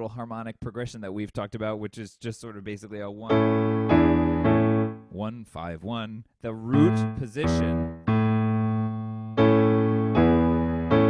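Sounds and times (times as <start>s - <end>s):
keyboard piano chords: 3.3s - 5.2s, 6.7s - 11.0s.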